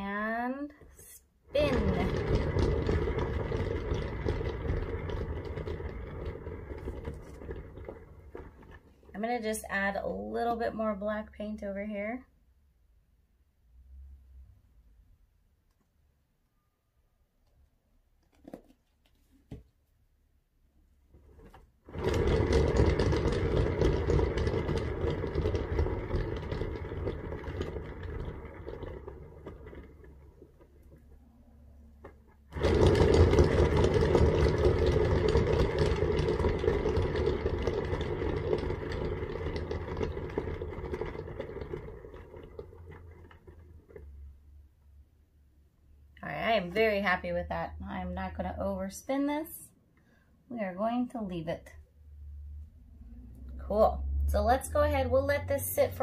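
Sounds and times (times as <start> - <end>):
turntable whirring: 1.5 - 9.7, 21.2 - 44.6.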